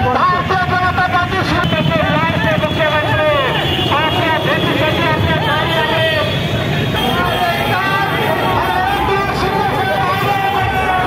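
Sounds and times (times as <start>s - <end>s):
motorcycle engines rumbling: 0.0s - 11.0s
crowd shouting: 1.5s - 11.0s.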